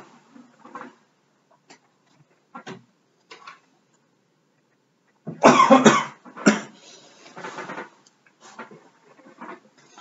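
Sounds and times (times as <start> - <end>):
person coughing: 5.4 - 6.8.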